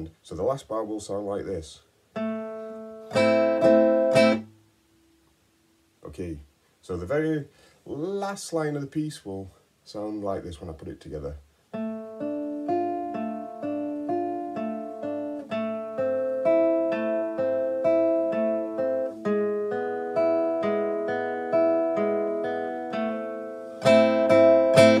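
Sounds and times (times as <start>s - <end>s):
fingerpicked classical guitar: 2.1s - 5.1s, 11.7s - 25.0s
loud strummed guitar chord: 23.8s - 25.0s.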